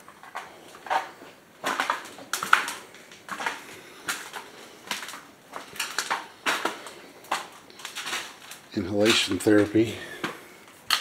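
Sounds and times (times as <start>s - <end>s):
footsteps crunching over debris: 0.0s - 11.0s.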